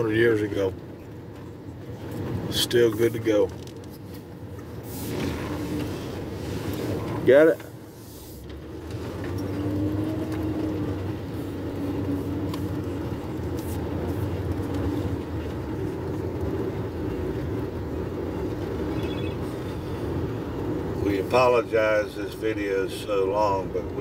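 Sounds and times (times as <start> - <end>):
car engine: 0.0 - 24.0.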